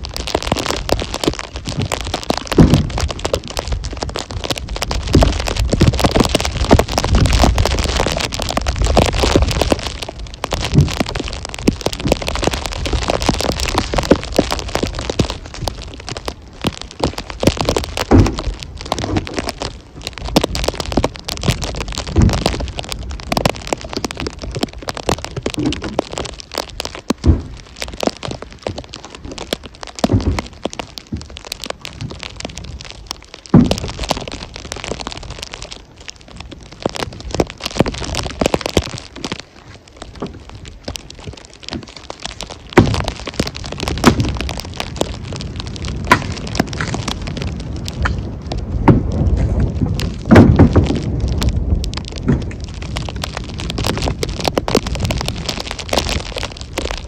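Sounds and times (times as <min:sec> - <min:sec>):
steady crackling: 0:00.0 - 0:57.0
wind on microphone: 0:00.0 - 0:57.0
heavy rumble: 0:39.8 - 0:57.0.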